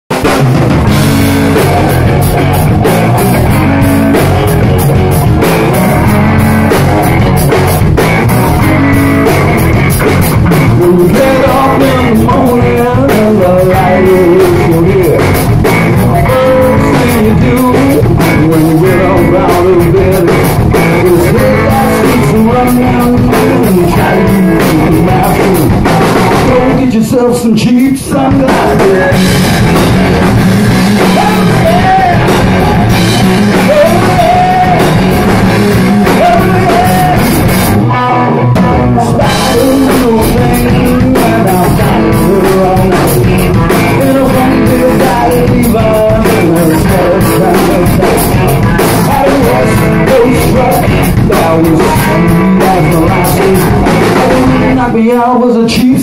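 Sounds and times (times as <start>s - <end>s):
bass guitar: 0.0s - 56.0s
drum kit: 0.1s - 56.0s
electric guitars: 0.1s - 56.0s.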